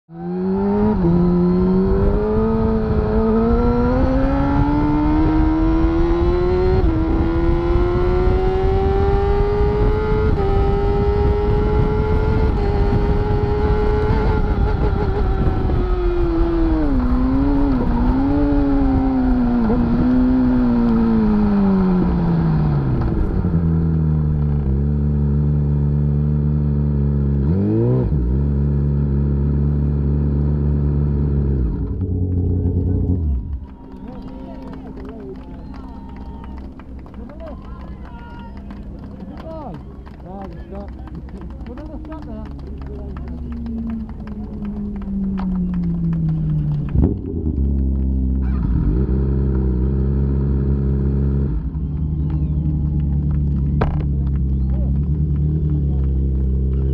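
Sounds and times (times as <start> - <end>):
motorcycle engine revving: 0.1 - 37.8, 40.9 - 56.9
wind noise: 0.8 - 22.2.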